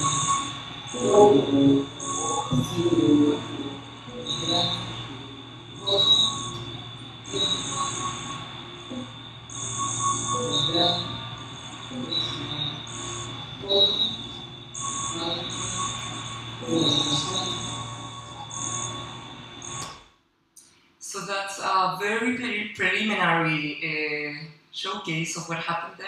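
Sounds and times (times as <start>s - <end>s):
low hum: 0.0s - 19.9s
short tones and clicks: 0.0s - 20.0s
steady high whine: 0.0s - 20.2s.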